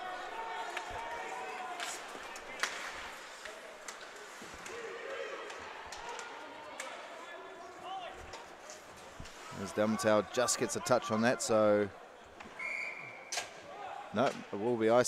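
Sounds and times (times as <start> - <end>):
steady rink hum: 0.1 - 10.0
hockey sticks and puck clacking: 0.6 - 7.1.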